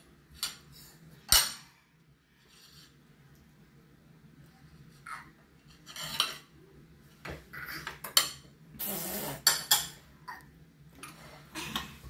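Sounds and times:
cutlery clinking against dishes: 5.8 - 6.5, 7.9 - 8.5, 9.4 - 10.0.

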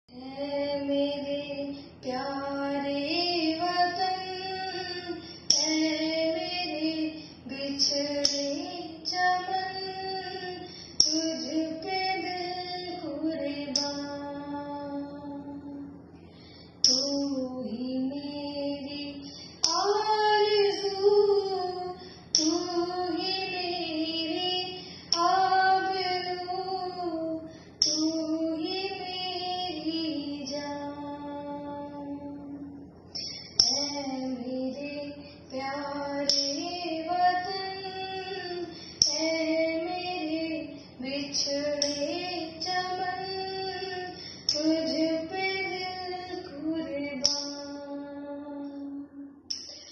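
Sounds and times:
woman singing slow melody: 0.1 - 49.9.

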